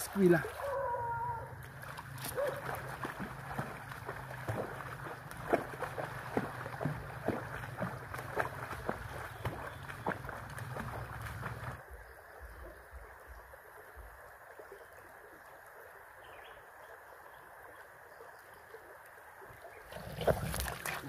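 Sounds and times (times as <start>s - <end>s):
person splashing in water: 0.0s - 11.8s, 19.9s - 21.0s
creek running over stones: 0.0s - 21.0s.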